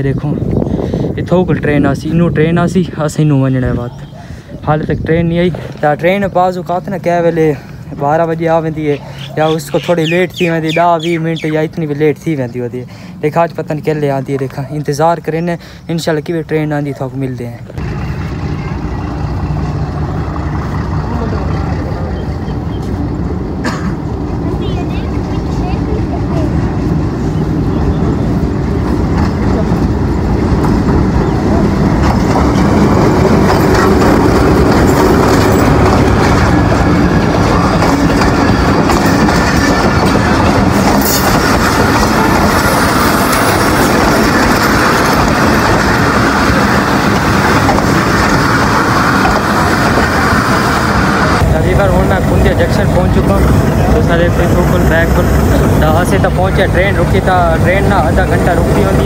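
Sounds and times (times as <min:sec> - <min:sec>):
diesel locomotive engine: 0:00.0 - 0:59.0
train wheels on rails: 0:17.6 - 0:59.0.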